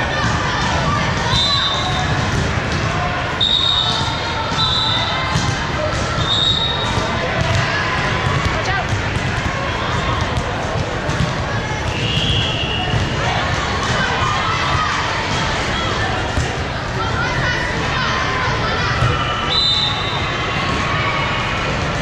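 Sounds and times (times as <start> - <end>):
players calling: 0.0 - 17.2
volleyball hit and bouncing: 3.8 - 14.2, 16.2 - 16.7.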